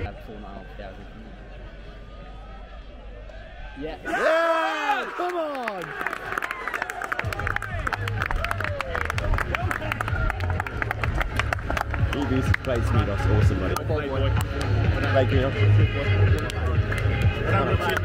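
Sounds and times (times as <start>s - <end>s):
players shouting in celebration: 4.0s - 10.9s
fast clapping and applause: 5.1s - 15.5s, 16.1s - 18.0s.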